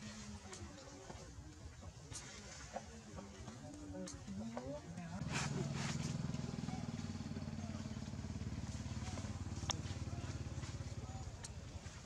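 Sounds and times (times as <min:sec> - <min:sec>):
small engine idling: 0:05.2 - 0:12.0.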